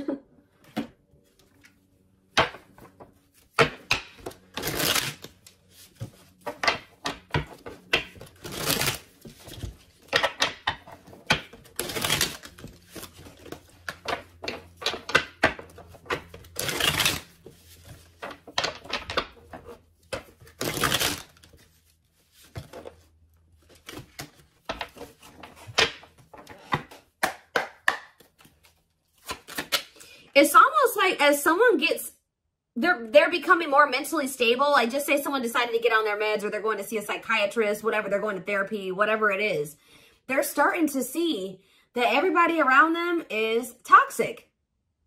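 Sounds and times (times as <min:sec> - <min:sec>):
cards being shuffled: 0:01.3 - 0:30.0
cards rustling: 0:02.7 - 0:27.1, 0:28.1 - 0:30.0.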